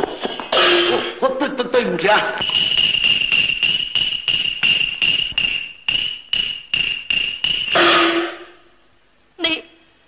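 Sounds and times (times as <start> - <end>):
wood block knocking: 2.4 - 8.4
long held high instrumental note: 2.4 - 8.6.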